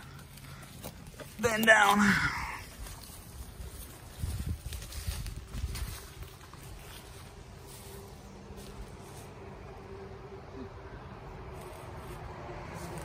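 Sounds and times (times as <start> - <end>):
wind buffeting microphone: 2.8 - 6.3.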